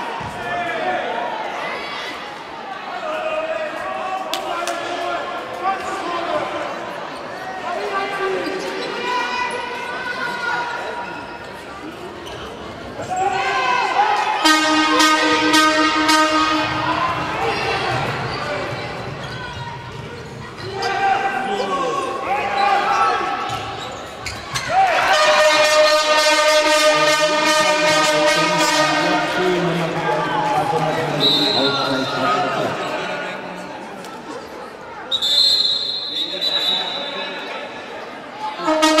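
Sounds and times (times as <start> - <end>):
crowd chanting: 14.4 - 18.4, 25.0 - 33.6.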